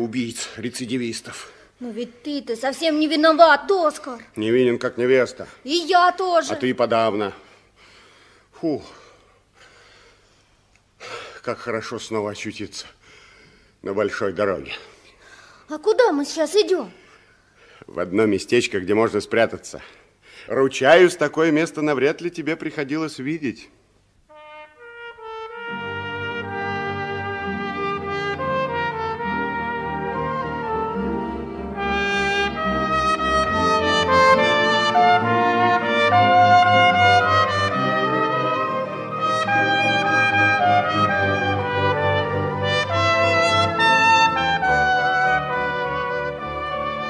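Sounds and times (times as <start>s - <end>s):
symphony orchestra playing: 24.3s - 47.0s.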